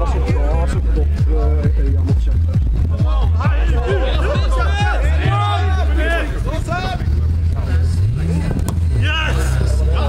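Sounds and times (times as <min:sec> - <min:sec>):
faint voices: 0:00.0 - 0:10.0
football kicked on turf: 0:08.6 - 0:08.9.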